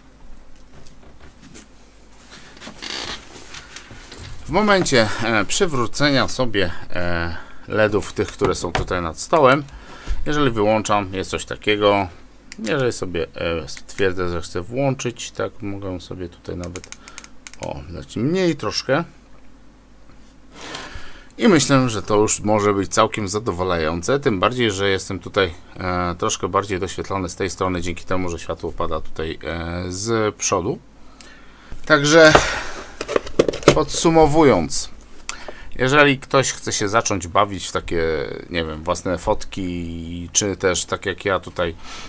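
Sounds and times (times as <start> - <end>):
chair creaking as someone sits: 0.6 - 5.0
clothing rustling: 0.7 - 4.6
soft intake of breath: 9.7 - 10.2, 20.5 - 21.4, 31.0 - 31.8, 32.4 - 33.0, 35.3 - 35.8, 41.8 - 42.0
light clicks: 16.6 - 17.7.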